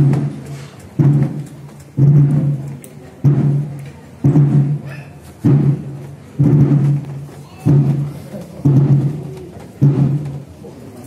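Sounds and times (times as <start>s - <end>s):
deep drum beats: 0.0s - 10.8s.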